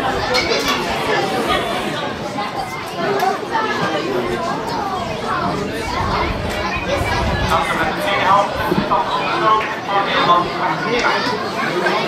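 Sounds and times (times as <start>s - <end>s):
chatter of many voices: 0.0s - 12.0s.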